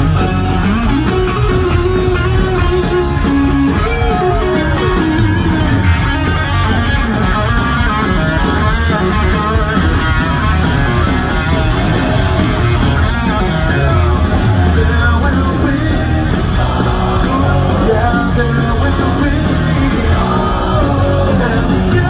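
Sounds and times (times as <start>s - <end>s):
electric guitar bending notes: 0.0s - 22.0s
punk rock band playing: 0.0s - 22.0s.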